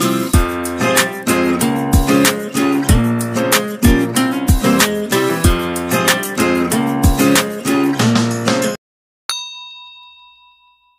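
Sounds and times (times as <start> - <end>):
guitar background music: 0.0 - 8.8
bell ding: 9.3 - 10.9.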